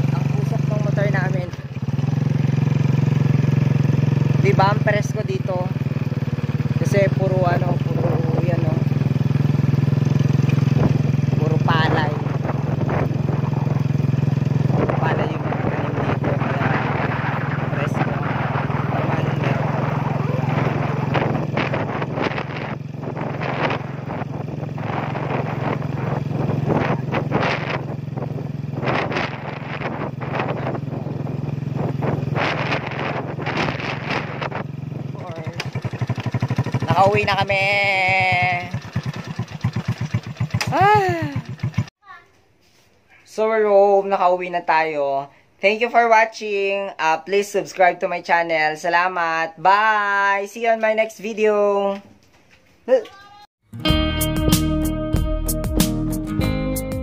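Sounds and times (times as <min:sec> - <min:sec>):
road rattle: 0:00.0 - 0:41.9
motorcycle engine running: 0:00.0 - 0:42.0
wind: 0:00.0 - 0:53.5.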